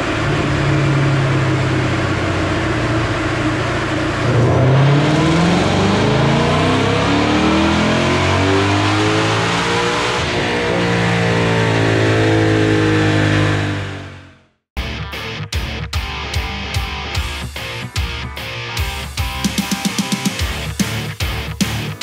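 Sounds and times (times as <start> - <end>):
engine revving at full throttle: 0.0 - 14.5.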